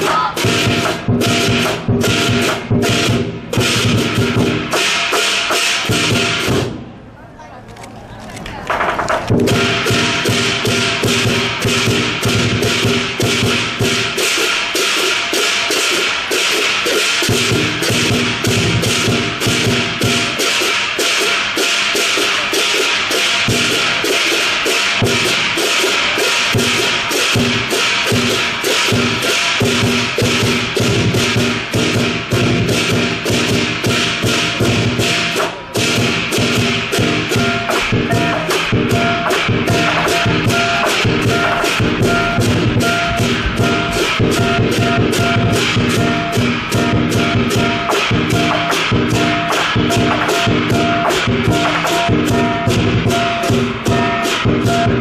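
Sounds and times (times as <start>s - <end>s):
drum: 0.0s - 7.0s, 8.6s - 55.0s
cymbals: 0.0s - 7.2s, 8.7s - 55.0s
gong: 9.5s - 55.0s.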